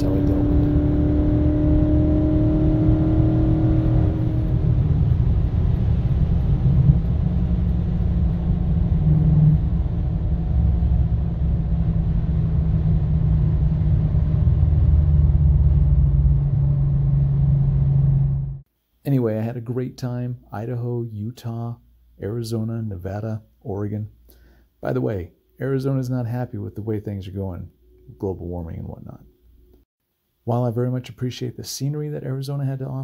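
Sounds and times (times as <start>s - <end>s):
car engine droning: 0.0s - 18.6s
road noise: 0.0s - 18.6s.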